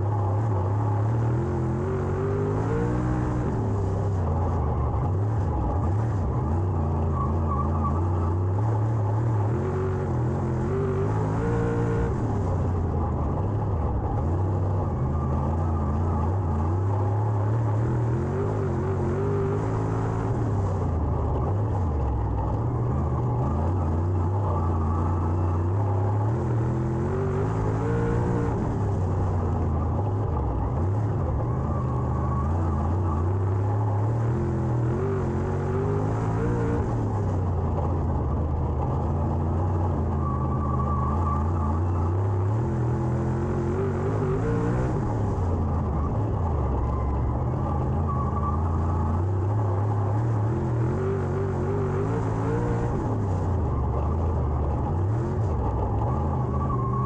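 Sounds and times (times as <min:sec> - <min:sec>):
race car engine: 0:00.0 - 0:57.0.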